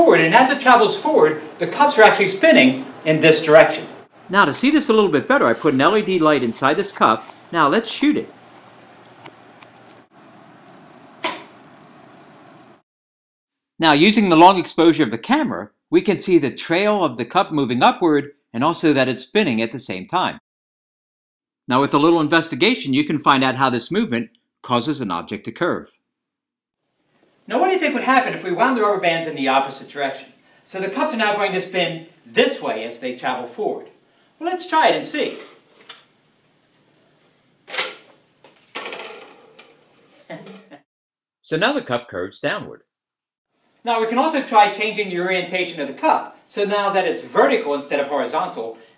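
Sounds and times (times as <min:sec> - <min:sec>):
faint room hiss: 0:00.0 - 0:12.8, 0:26.8 - 0:38.8, 0:43.6 - 0:48.9
cups hitting floor and tumbling: 0:37.8 - 0:39.8.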